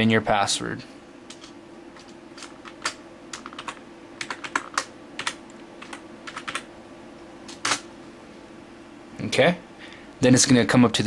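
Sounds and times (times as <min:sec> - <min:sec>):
faint steady hum: 0:00.0 - 0:11.0
keyboard keys clicking: 0:01.3 - 0:06.7.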